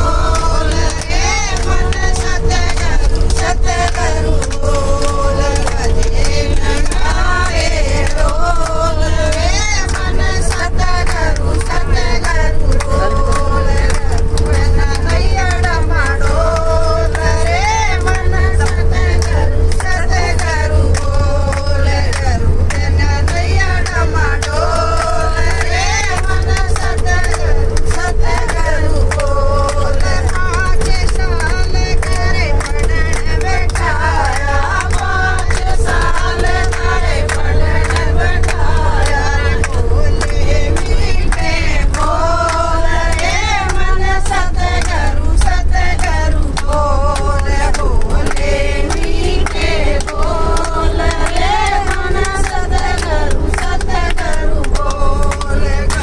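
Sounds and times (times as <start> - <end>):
moving bus rumble: 0.0 - 56.0
steady hum: 0.0 - 56.0
women singing together: 0.0 - 56.0
hands clapping: 0.3 - 7.2, 8.0 - 16.7, 18.0 - 56.0.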